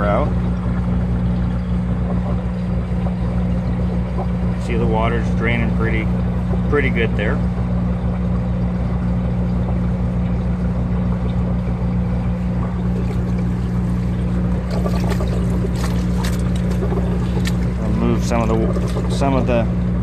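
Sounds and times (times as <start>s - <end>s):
refrigeration unit droning: 0.0s - 20.0s
wet clothes splashing in tub: 11.7s - 19.6s.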